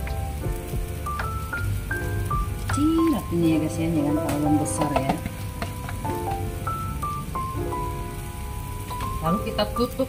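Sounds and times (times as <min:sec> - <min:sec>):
food sizzling in a pan: 0:00.0 - 0:10.0
slow background music: 0:00.0 - 0:10.0.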